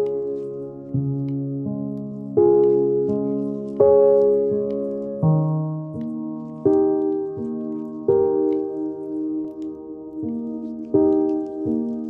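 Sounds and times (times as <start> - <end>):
faint rain patter: 0.0 - 12.0
slow ambient piano: 0.0 - 12.0.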